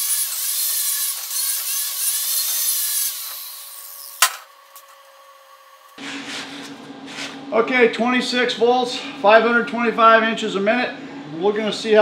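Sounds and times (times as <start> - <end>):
wire wheel grinder scouring steel: 0.0 - 4.3.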